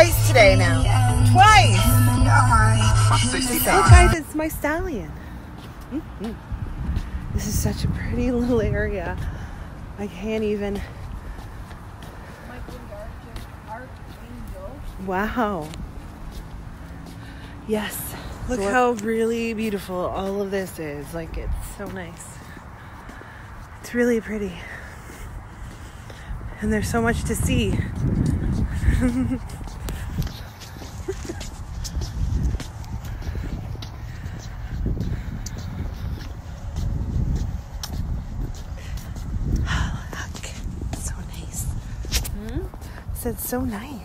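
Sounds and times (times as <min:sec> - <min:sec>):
low microphone rumble: 0:00.0 - 0:04.7, 0:25.1 - 0:44.0
footsteps on brick paving: 0:03.6 - 0:44.0.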